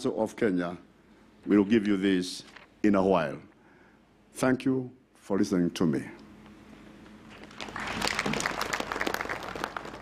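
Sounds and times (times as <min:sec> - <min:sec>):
audience applauding: 0:07.4 - 0:10.0.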